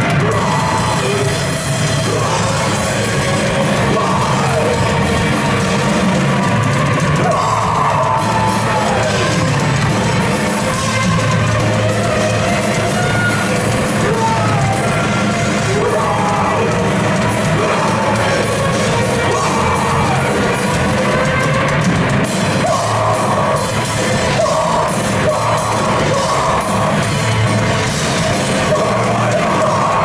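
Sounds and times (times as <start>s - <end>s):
singer yelling: 0.0s - 5.6s, 6.3s - 21.8s, 22.5s - 27.5s, 28.1s - 30.0s
hardcore band playing: 0.0s - 30.0s.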